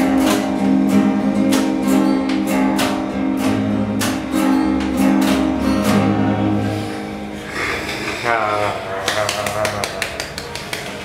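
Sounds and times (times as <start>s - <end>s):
hands clapping: 0.0s - 0.7s, 1.5s - 3.2s, 7.8s - 11.0s
person speaking: 7.5s - 10.6s.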